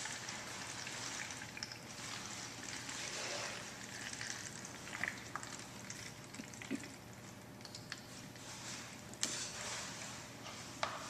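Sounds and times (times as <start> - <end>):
water trickling into plastic bottle: 0.0 - 8.2.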